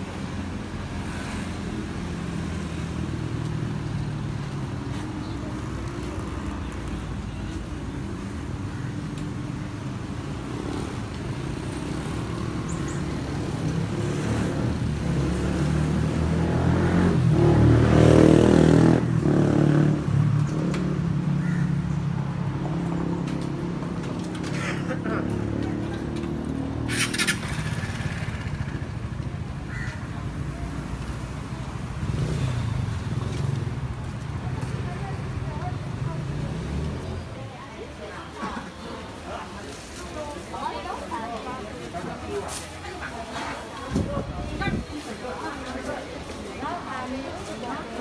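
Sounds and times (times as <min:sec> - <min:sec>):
motorcycle engine running: 0:25.4 - 0:29.9.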